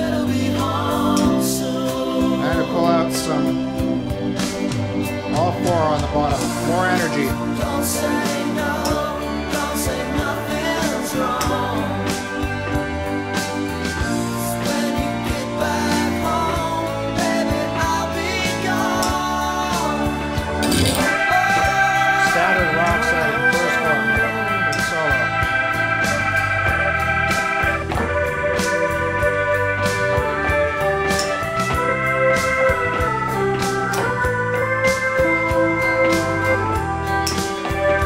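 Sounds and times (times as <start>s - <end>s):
organ sustained chords: 0.0s - 38.0s
recorded pop song: 0.0s - 38.0s.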